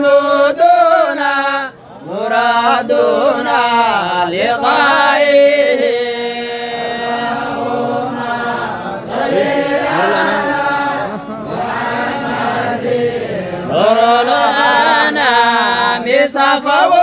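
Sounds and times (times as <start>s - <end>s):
group of singers chanting: 0.0s - 17.0s.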